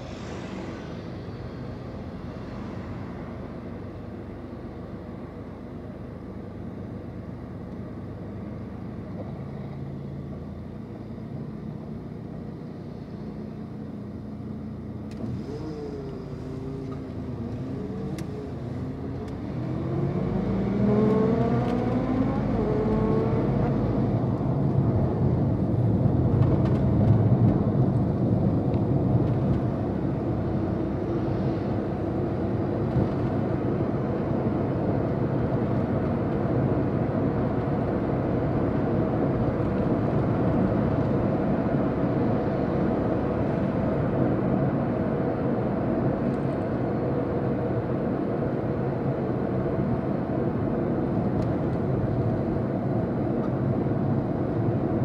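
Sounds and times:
car idling hum: 0.0 - 20.5
car accelerating whine: 0.0 - 55.0
car engine and road noise: 0.0 - 55.0.

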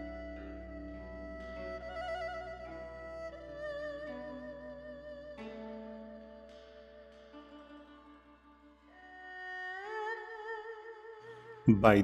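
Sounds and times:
slow music with vibrato notes: 0.0 - 12.0.

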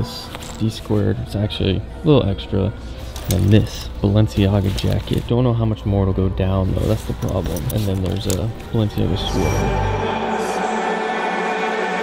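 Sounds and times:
bass: 0.0 - 10.7
choir-like held chord: 8.9 - 12.0.

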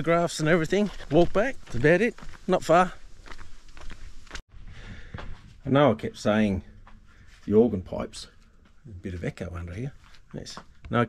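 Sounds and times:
footsteps on dirt track: 0.0 - 5.6.

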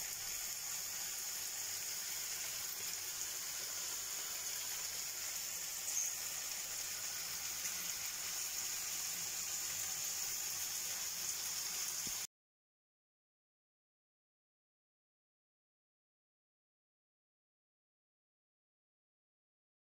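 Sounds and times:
steady hiss: 0.0 - 12.3.

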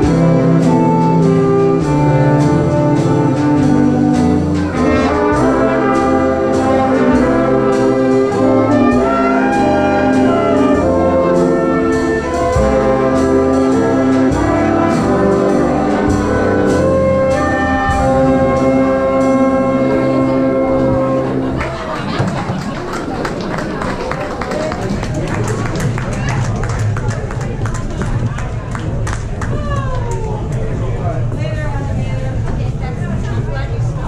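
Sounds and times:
jazz big band playing: 0.0 - 23.2.

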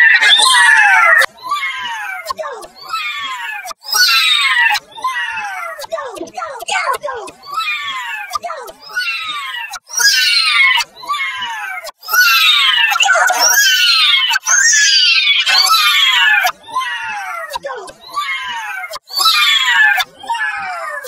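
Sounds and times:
processed voice crying out: 0.0 - 21.0.

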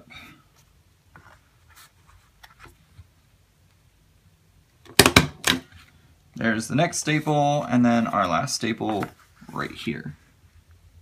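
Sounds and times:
cardstock rustling and tapping: 8.8 - 9.7.

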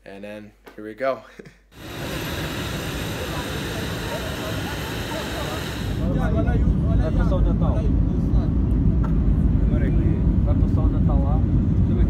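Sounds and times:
thin high whine: 1.8 - 7.2
faint passenger voices: 1.8 - 12.0
jet airliner cabin drone: 1.8 - 12.0.

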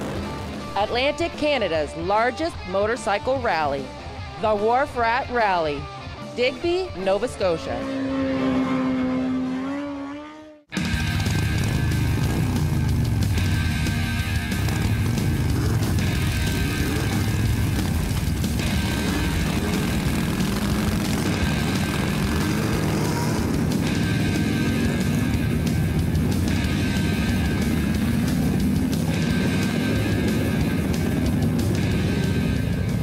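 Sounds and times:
motorcycle engines passing: 0.0 - 1.9, 7.0 - 33.0
background music: 0.0 - 9.6, 10.7 - 33.0.

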